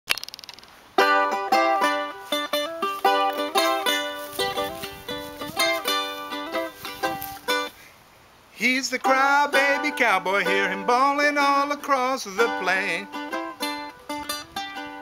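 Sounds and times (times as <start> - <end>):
brief crackle: 0.1 - 0.8
charango picked and strummed: 0.1 - 8.0, 8.9 - 15.0.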